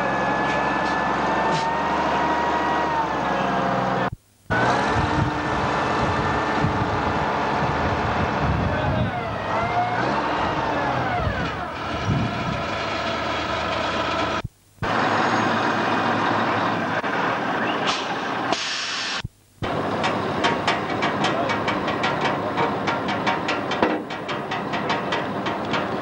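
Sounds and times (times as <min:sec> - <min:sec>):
wheel loader engine running: 0:00.0 - 0:18.5, 0:19.6 - 0:26.0
voices: 0:08.2 - 0:12.5, 0:19.7 - 0:23.8.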